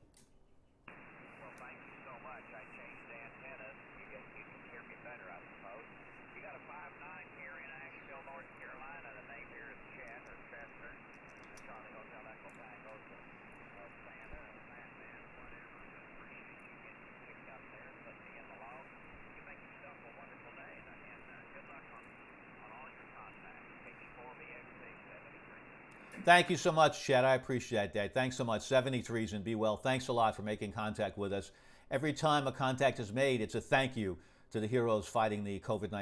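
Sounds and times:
faint voice over radio: 0:00.9 - 0:26.5
radio band noise hiss: 0:00.9 - 0:36.0.

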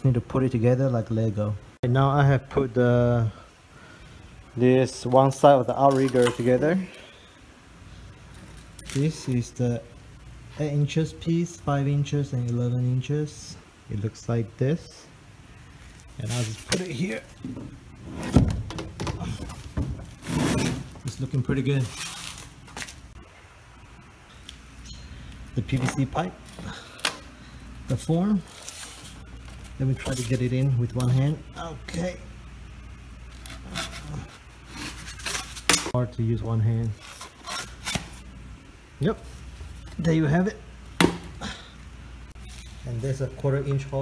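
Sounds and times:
pipe scraping plastic: 0:17.4 - 0:21.0, 0:33.4 - 0:35.9.

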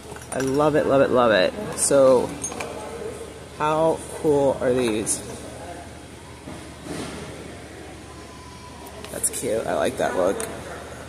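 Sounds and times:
store background hum and hiss: 0:00.0 - 0:11.0
faint murmur: 0:01.2 - 0:11.0.

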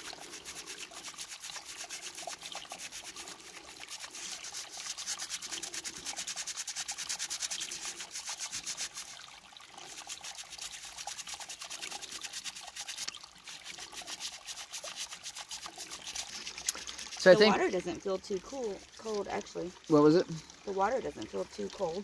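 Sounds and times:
brush scrubbing rock: 0:00.0 - 0:09.2, 0:09.8 - 0:19.6.

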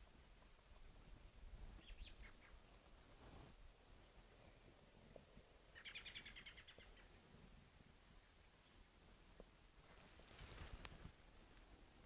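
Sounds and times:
faint bird calls: 0:01.8 - 0:02.8, 0:05.7 - 0:07.2.

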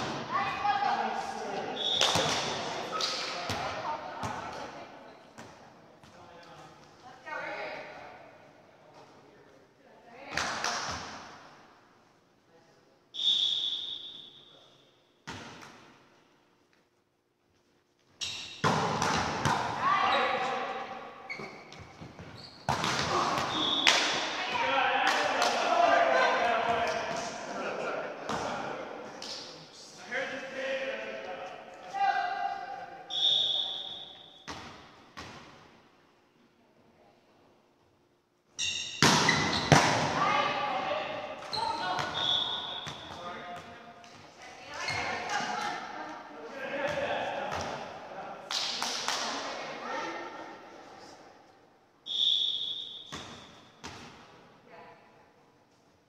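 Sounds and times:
volleyball thudding on gym floor: 0:39.0 - 0:40.2.

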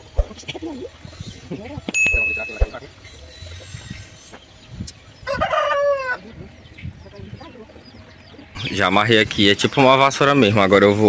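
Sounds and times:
rooster crowing: 0:05.2 - 0:06.2.

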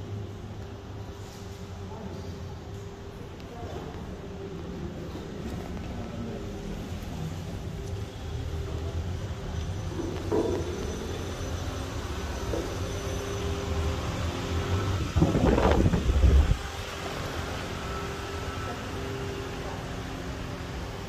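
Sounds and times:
louder rumble: 0:14.9 - 0:16.8.

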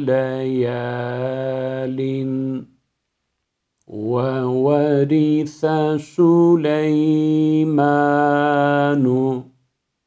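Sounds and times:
man chanting melodically: 0:00.0 - 0:02.7, 0:03.9 - 0:09.5.

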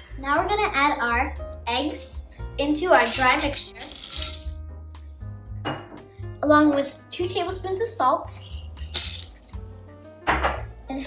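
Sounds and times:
plastic bricks clattering: 0:03.0 - 0:04.6.

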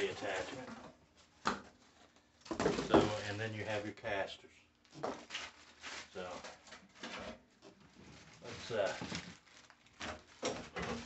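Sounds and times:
plastic bag crinkling: 0:05.2 - 0:07.1, 0:07.8 - 0:11.0.

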